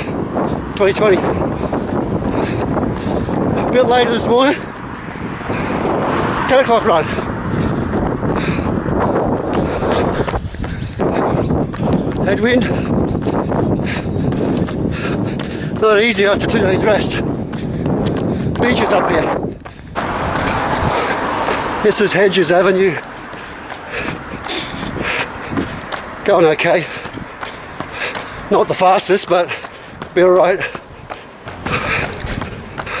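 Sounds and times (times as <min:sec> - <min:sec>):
runner's footfalls: 0:00.0 - 0:33.0
wind buffeting microphone: 0:00.0 - 0:33.0
person breathing: 0:05.0 - 0:08.9, 0:23.0 - 0:26.2, 0:26.8 - 0:28.5, 0:29.4 - 0:33.0.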